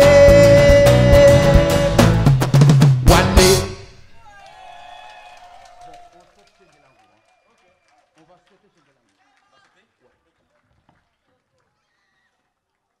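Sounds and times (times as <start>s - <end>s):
band holding a note: 0.0s - 4.3s
audience clapping and cheering: 4.2s - 13.0s.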